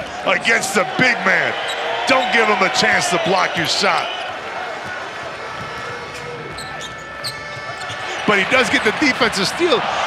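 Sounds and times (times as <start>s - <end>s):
sharp sounds of play on hardwood court: 1.6s - 9.4s.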